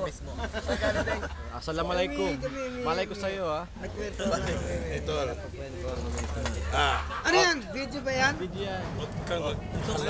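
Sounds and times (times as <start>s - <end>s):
people conversing: 0.0s - 10.0s.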